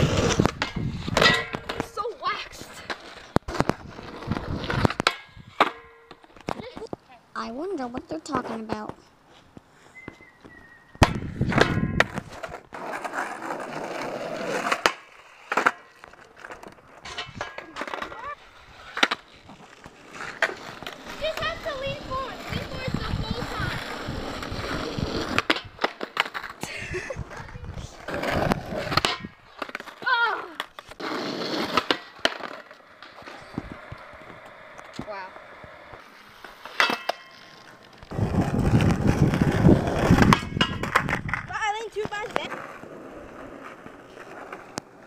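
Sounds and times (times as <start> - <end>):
skateboard clacking on ground: 0.0 - 9.0, 10.9 - 45.0
skateboard wheels rolling on asphalt: 0.0 - 45.0.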